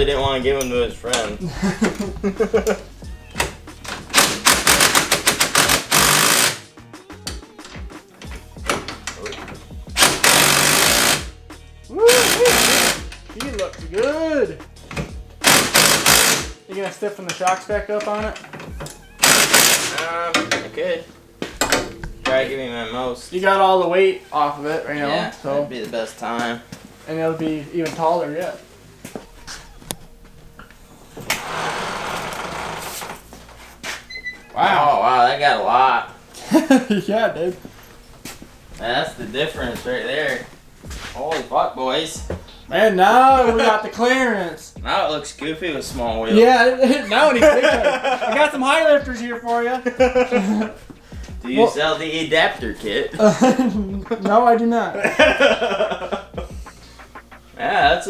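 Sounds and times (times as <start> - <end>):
impact wrench rattling: 3.9 - 6.6, 8.6 - 11.3, 12.2 - 13.8, 15.4 - 16.6, 18.3 - 20.7
hydraulic jack hissing: 4.1 - 6.6, 10.0 - 11.3, 12.1 - 13.1, 15.4 - 16.6, 19.2 - 20.0.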